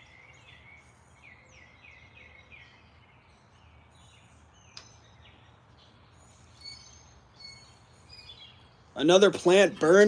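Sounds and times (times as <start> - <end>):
faint bird chirps: 0.0 - 9.0
low outdoor background: 0.0 - 10.0.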